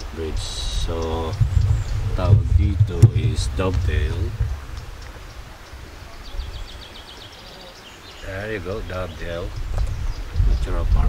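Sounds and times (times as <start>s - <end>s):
steady low rumble: 0.4s - 6.6s.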